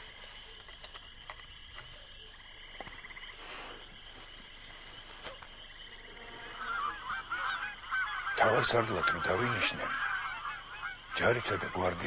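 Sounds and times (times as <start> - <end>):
honking bird calls: 4.7 - 12.0.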